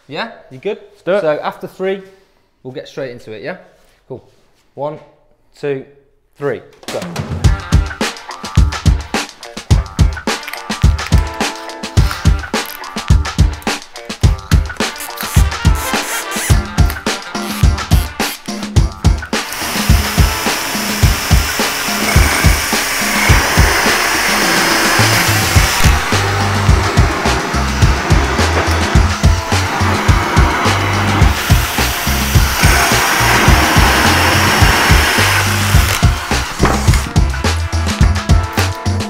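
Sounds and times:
background music with steady beat: 6.8 - 39.0
drills cutting holes in wood: 14.8 - 16.6, 17.3 - 18.5, 19.3 - 37.1.

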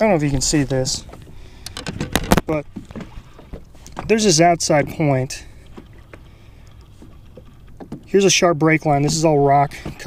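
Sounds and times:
sharp clicks and knocks: 1.6 - 4.1.

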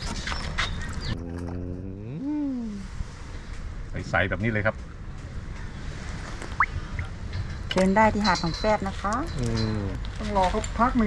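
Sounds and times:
domestic animal long call: 1.1 - 2.9.

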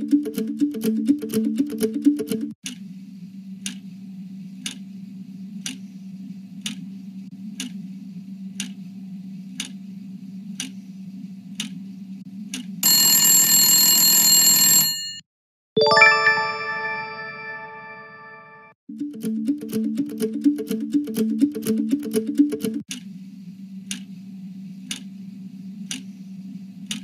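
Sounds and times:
timer ticking: 0.0 - 2.6, 19.0 - 23.0
bright chime: 15.8 - 18.7.

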